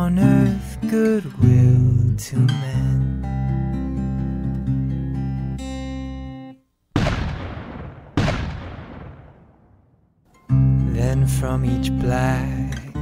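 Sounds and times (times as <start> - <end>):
acoustic guitar chords: 0.0 - 6.6, 10.3 - 13.0
cannon booms: 7.0 - 10.1.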